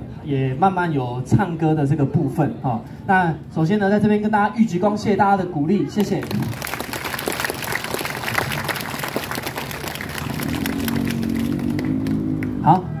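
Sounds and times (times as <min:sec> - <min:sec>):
audience clapping: 0:06.0 - 0:12.6.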